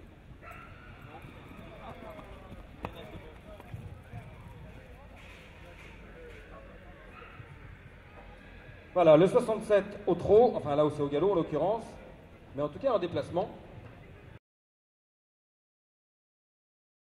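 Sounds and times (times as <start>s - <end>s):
faint crowd murmur: 0.0s - 14.4s.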